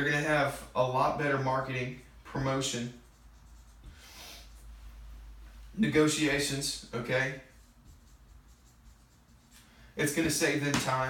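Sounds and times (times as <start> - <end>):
marker scratching on whiteboard: 1.1 - 5.0, 5.8 - 11.0.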